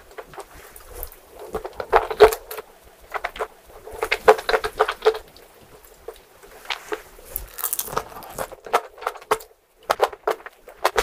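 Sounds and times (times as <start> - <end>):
chewing with mouth clicks: 6.6 - 8.6.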